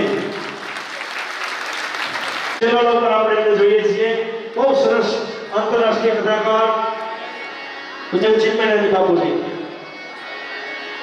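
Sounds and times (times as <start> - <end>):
audience clapping: 0.0 - 2.6.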